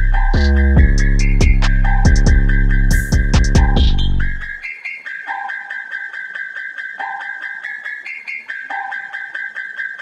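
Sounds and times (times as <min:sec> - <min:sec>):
low repeating note: 0:00.0 - 0:04.6
hip-hop beat high-pitched melody: 0:00.0 - 0:10.0.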